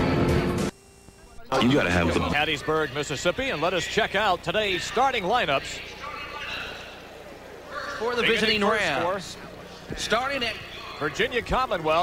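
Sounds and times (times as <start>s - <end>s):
steady low hum: 0.1s - 12.0s
faint crowd murmur: 1.0s - 12.0s.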